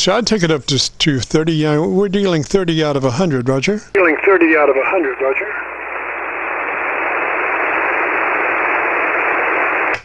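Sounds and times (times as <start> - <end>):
shortwave receiver hiss: 3.9 - 10.0.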